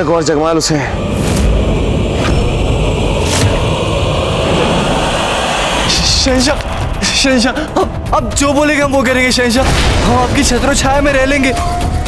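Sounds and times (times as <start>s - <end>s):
whoosh and rumble sound effect: 0.8s - 10.1s.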